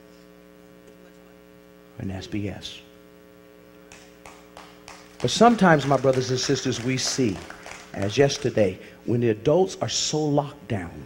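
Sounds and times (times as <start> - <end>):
steady electrical hum: 0.0 - 11.0
person speaking: 5.0 - 11.0.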